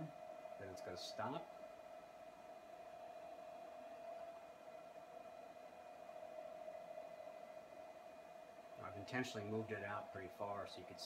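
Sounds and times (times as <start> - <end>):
faint motor whine: 0.0 - 11.0.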